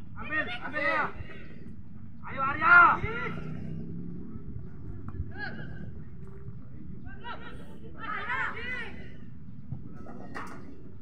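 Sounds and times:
distant shout: 0.2s - 1.6s, 2.2s - 3.9s, 7.0s - 9.4s
loud shout: 2.3s - 3.5s, 7.1s - 9.1s.

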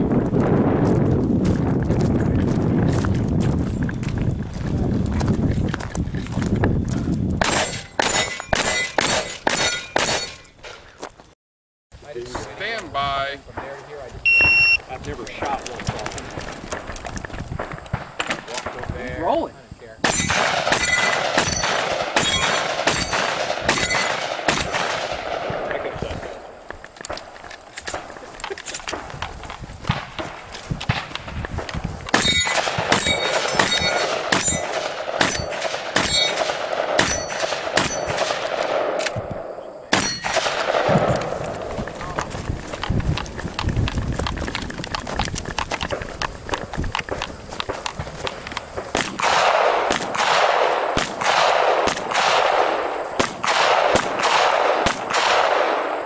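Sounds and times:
shotgun shots: 7.4s - 10.4s, 13.6s - 14.8s, 20.0s - 26.6s, 29.9s - 42.2s, 47.1s - 56.0s
steel targets ringing: 7.6s - 10.5s, 32.2s - 38.2s, 39.9s - 40.4s.

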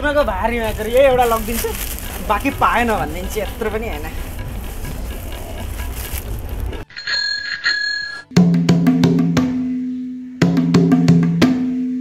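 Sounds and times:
bell ringing high tone: 6.8s - 8.3s.

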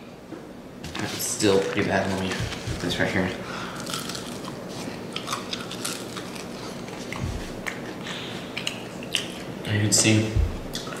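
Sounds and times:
chewing crispy chicken: 3.8s - 9.6s.

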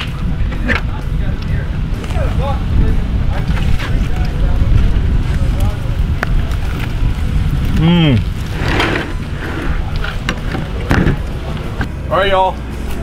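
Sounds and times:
wind rumbling on microphone: 0.0s - 12.0s
faint voices: 0.0s - 13.0s.

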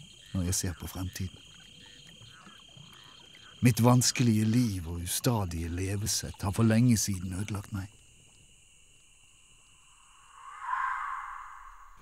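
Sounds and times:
soft whoosh: 10.0s - 12.0s.

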